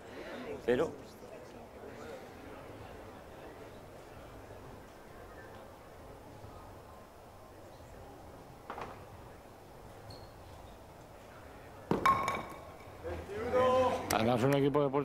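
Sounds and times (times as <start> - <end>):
ball knocking wooden pins: 11.9 - 12.8
men's voices: 13.0 - 15.0.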